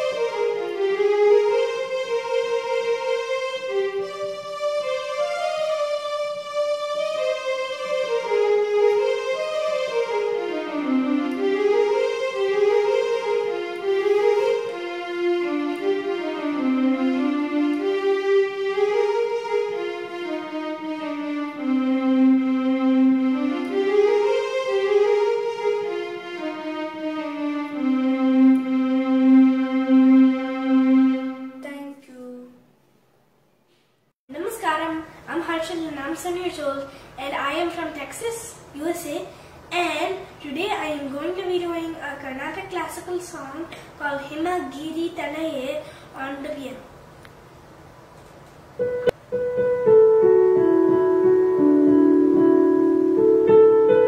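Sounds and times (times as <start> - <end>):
electronic keyboard melody: 0.0 - 31.6, 48.8 - 54.0.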